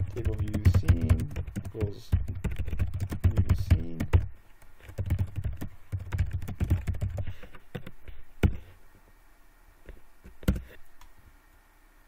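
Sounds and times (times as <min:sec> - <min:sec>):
typing on keyboard: 0:00.0 - 0:07.9.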